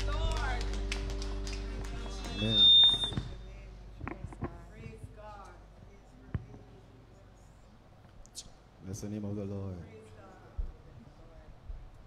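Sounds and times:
microphone feedback whistle: 2.1s - 3.4s.

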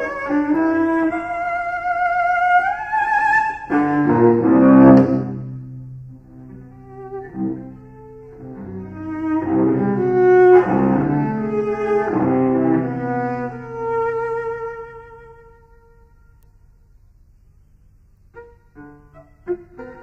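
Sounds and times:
solo cello playing: 0.0s - 16.5s, 18.3s - 20.0s.

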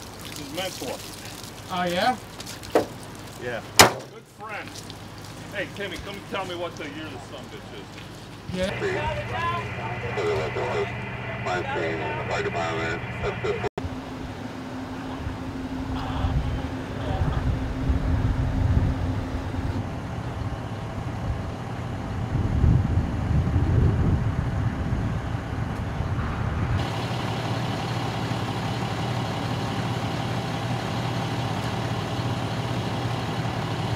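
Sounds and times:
traffic noise: 0.0s - 33.9s
fire engine diesel engine idling: 4.3s - 26.1s, 26.8s - 33.9s.

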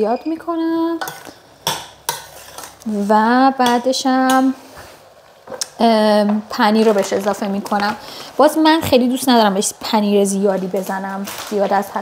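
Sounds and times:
metal spoon scraping a pot: 1.0s - 4.5s.

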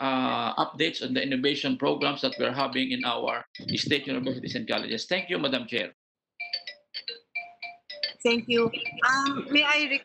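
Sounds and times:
electronic beep melody: 1.7s - 5.8s, 6.4s - 10.0s.

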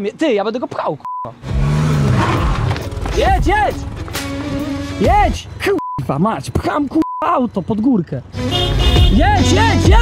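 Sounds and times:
car engine revving hard: 1.4s - 2.8s.

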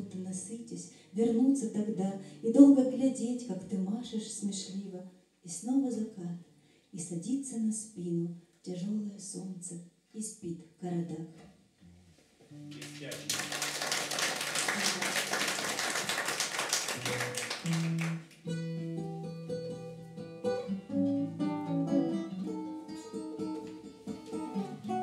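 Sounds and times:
classical guitar finger-picking: 11.5s - 13.6s, 17.0s - 25.0s
audience applause: 12.8s - 18.4s.

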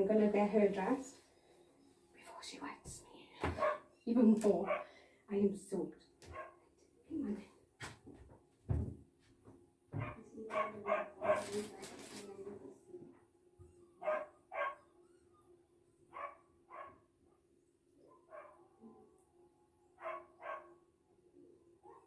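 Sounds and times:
dog barking: 3.6s - 3.9s, 4.6s - 4.9s, 6.3s - 6.6s, 10.0s - 11.6s, 14.0s - 14.9s, 16.1s - 17.1s, 18.1s - 18.6s, 20.0s - 20.8s.

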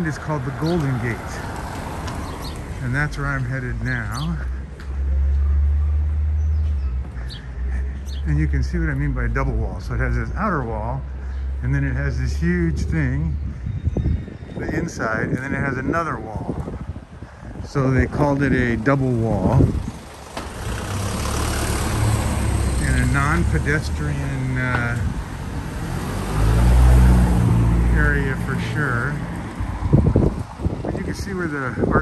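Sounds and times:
wind rumbling on microphone: 6.4s - 21.2s, 22.0s - 32.0s
van engine driving past: 18.9s - 30.9s.

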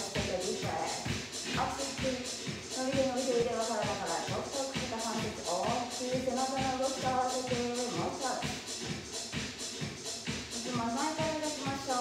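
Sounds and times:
upbeat dance music: 0.0s - 12.0s.

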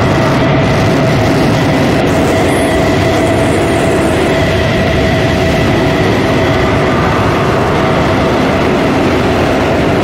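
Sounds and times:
droning noise wall: 0.0s - 10.0s.

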